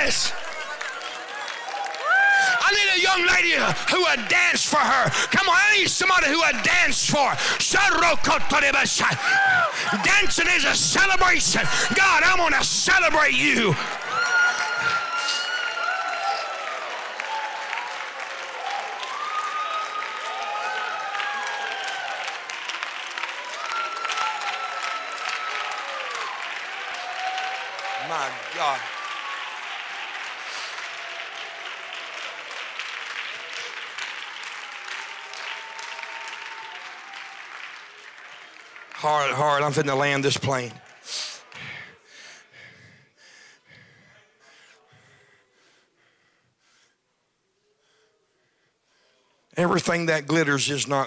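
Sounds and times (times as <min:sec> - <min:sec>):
congregation clapping: 0:00.0 - 0:42.1.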